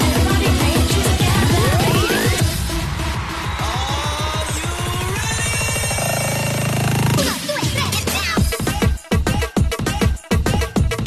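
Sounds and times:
electronic dance music drum roll: 0:00.0 - 0:11.0.

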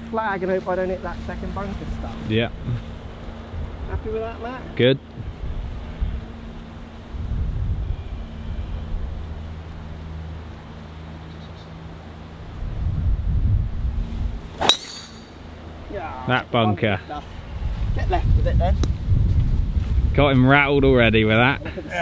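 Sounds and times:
wind rumble on microphone: 0:00.9 - 0:10.5, 0:12.4 - 0:14.6, 0:16.7 - 0:22.0
golf club striking ball: 0:14.6 - 0:15.5.

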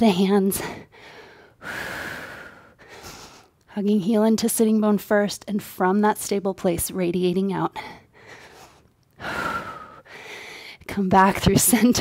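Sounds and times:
woman breathing hard: 0:00.6 - 0:03.6, 0:07.9 - 0:10.8.

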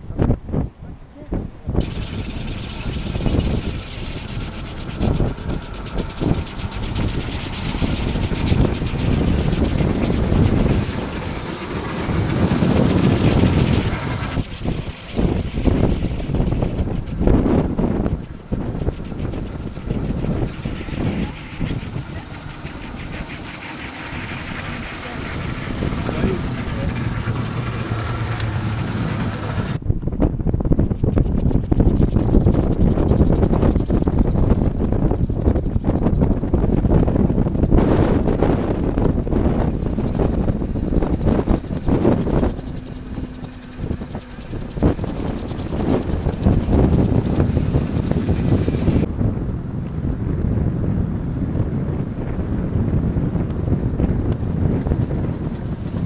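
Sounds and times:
wind buffeting microphone: 0:00.0 - 0:56.0
people's voices: 0:20.6 - 0:29.8.

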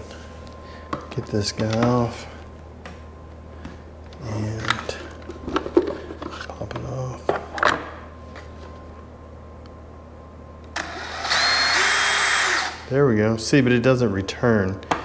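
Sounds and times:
power drill whirring: 0:10.8 - 0:12.9.

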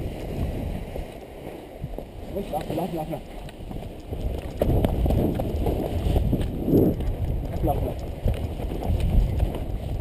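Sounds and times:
wind rumbling on microphone: 0:00.0 - 0:10.0
footsteps running on grass: 0:01.9 - 0:10.0.

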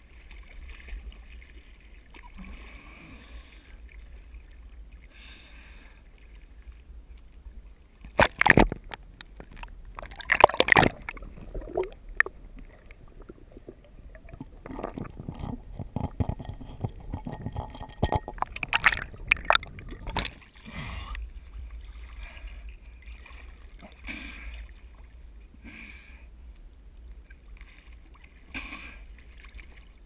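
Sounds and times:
water splashing and sloshing: 0:00.0 - 0:30.0
muffled underwater gurgling: 0:10.0 - 0:21.1.

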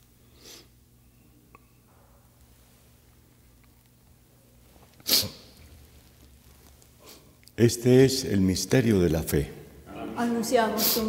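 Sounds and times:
person sneezing: 0:05.0 - 0:05.6.

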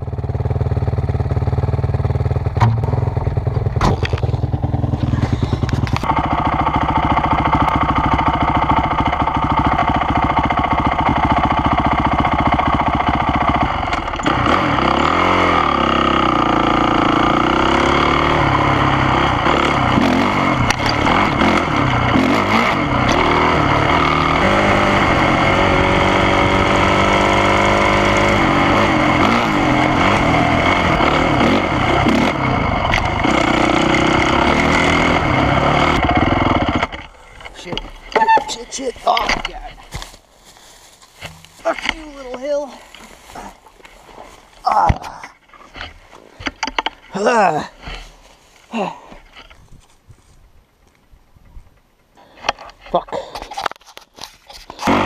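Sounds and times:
dirt bike engine revving: 0:00.4 - 0:40.2, 0:54.8 - 0:55.0
sharp knocks: 0:02.6 - 0:02.9.

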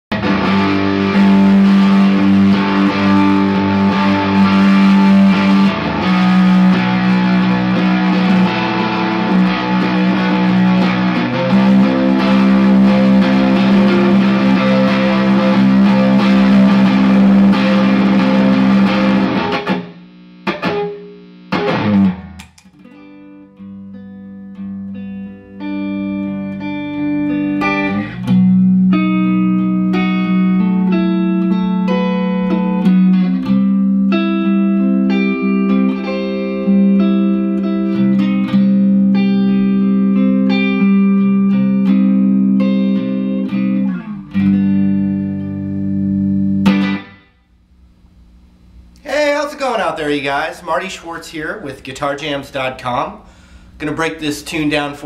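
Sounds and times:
electric guitar chords: 0:00.1 - 0:51.5, 0:53.1 - 0:55.0.

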